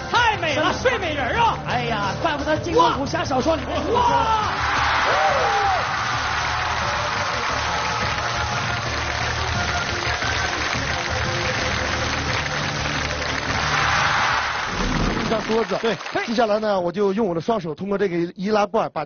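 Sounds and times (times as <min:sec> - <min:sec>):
background music with bass line: 0:00.0 - 0:15.8
audience applauding: 0:03.6 - 0:16.8
person exclaiming: 0:03.8 - 0:04.6.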